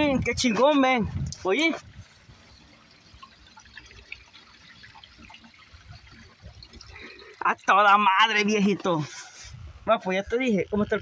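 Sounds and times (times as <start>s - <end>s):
water dripping: 0.9s - 9.0s.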